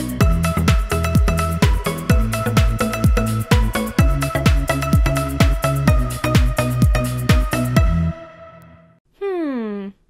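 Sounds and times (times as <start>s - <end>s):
electronic song: 0.0s - 8.9s.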